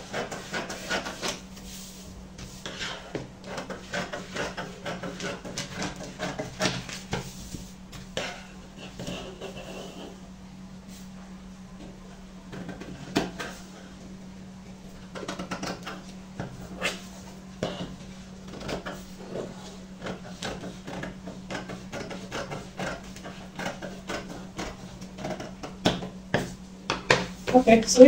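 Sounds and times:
scissors cutting paper: 0:03.4 - 0:07.0.

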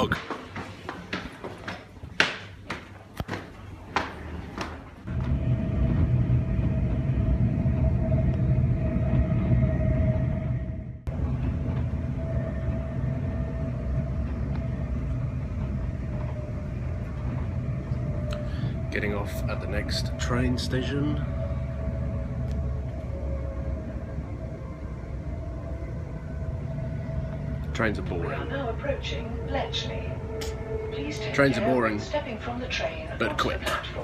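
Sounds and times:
footsteps on stairs: 0:00.0 - 0:06.0
train rumbling inside carriage: 0:00.0 - 0:34.0.

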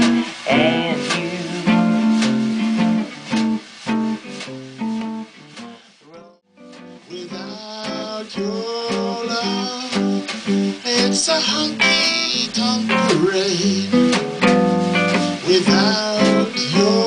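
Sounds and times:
snare drum strokes: 0:00.0 - 0:05.9, 0:06.6 - 0:17.0
swing guitar playing: 0:00.0 - 0:17.0.

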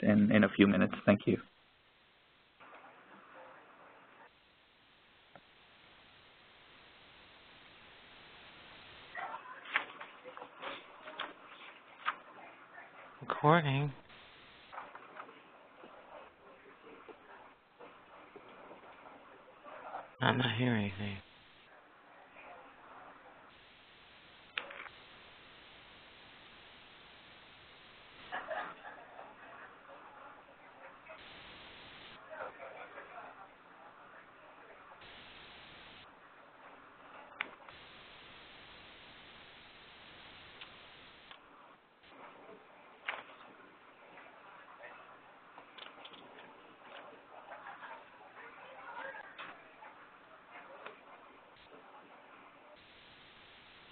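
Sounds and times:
phone line hiss: 0:31.2 - 0:32.2, 0:35.0 - 0:36.0, 0:37.7 - 0:41.3, 0:52.8 - 0:53.9
faint clicks: 0:40.5 - 0:41.4.

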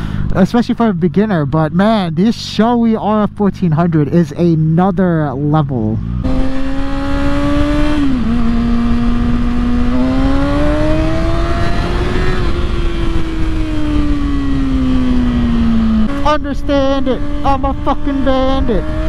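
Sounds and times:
motorcycle engine running: 0:00.0 - 0:19.0
wind rush: 0:06.2 - 0:19.0.

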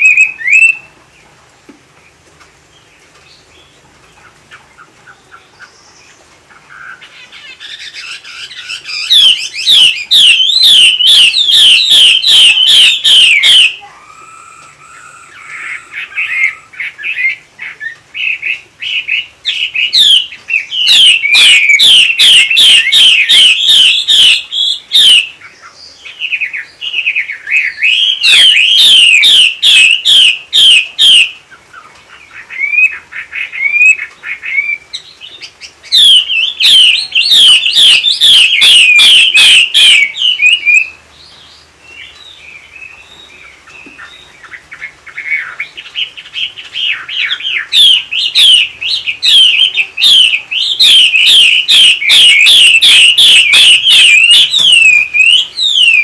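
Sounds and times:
soft bird calls: 0:00.0 - 0:56.0.

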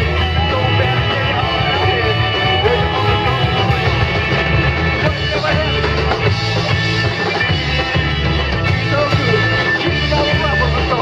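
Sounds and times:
drums: 0:00.0 - 0:11.0
electric bass: 0:00.0 - 0:11.0
electric guitar: 0:00.0 - 0:11.0
keyboard: 0:00.0 - 0:11.0.

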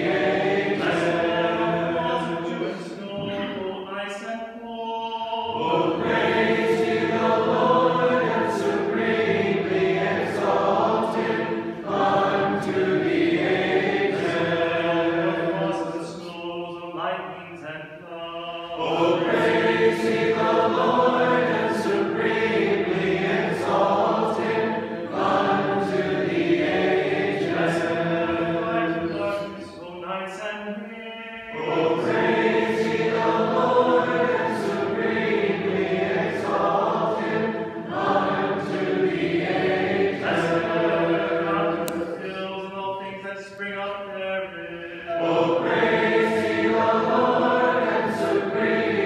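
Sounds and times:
church choir singing a hymn: 0:00.0 - 0:49.0.

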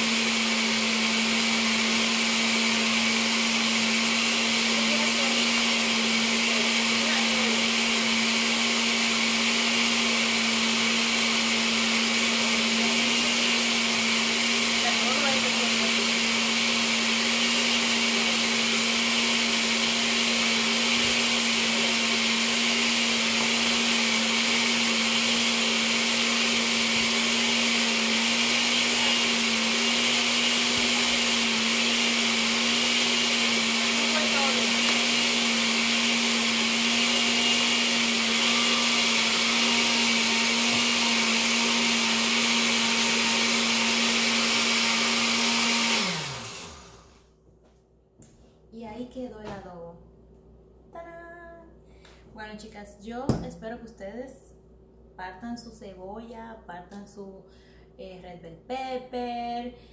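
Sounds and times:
blender running: 0:00.0 - 0:47.3.

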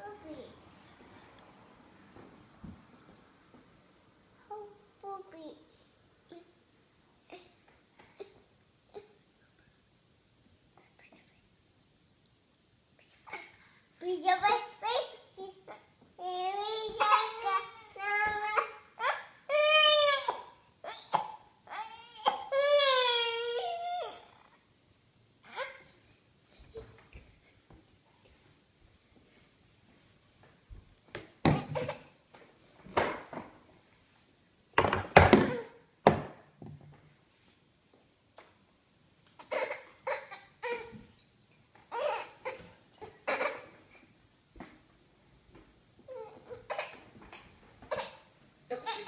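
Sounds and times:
child whispering: 0:10.8 - 0:11.5.

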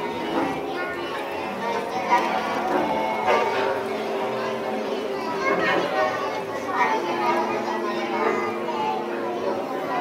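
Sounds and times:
children's voices chattering: 0:00.0 - 0:10.0.

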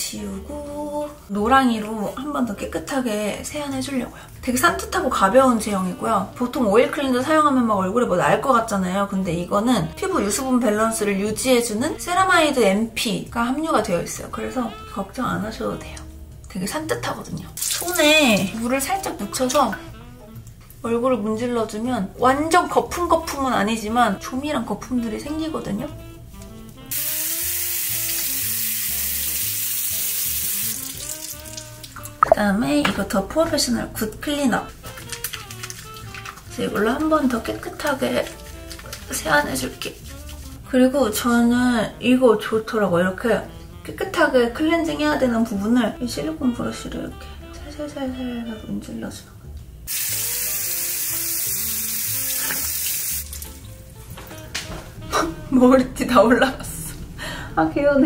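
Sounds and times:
background music: 0:00.0 - 0:58.0
tap water running: 0:17.4 - 0:20.5, 0:26.9 - 0:32.4, 0:34.8 - 0:40.6, 0:49.9 - 0:54.5.

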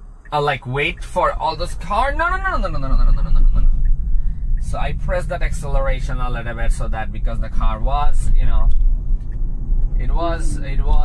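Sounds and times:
road rumble inside car: 0:00.0 - 0:11.0.

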